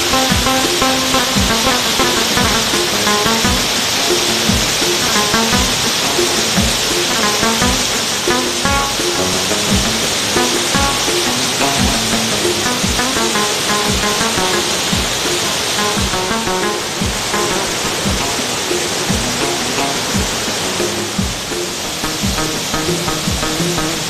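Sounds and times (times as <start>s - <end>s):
background music with drum beat: 0.0s - 24.0s
water rushing over weir: 0.0s - 24.0s.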